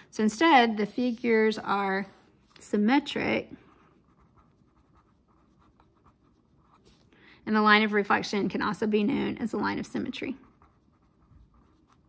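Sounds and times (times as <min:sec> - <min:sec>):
pen scratching on paper: 0:03.9 - 0:07.0, 0:10.4 - 0:12.0.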